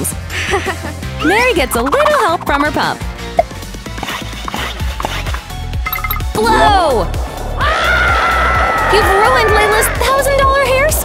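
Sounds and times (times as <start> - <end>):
upbeat music with steady beat: 1.2 - 6.9.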